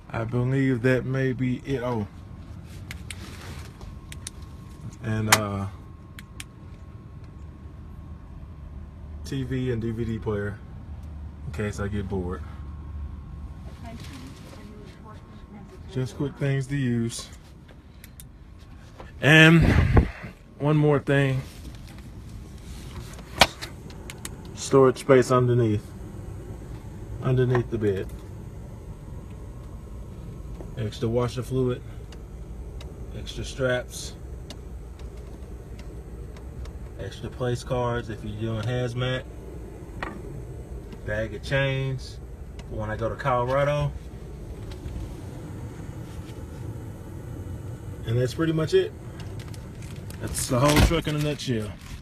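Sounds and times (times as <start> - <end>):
vehicle engine idling: 0.0 - 52.0
steady low background noise: 20.3 - 52.0.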